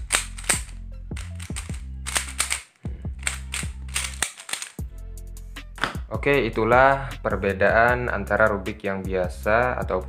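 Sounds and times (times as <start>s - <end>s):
plastic puzzle cube clicking: 0.0s - 4.8s
background music: 0.0s - 10.0s.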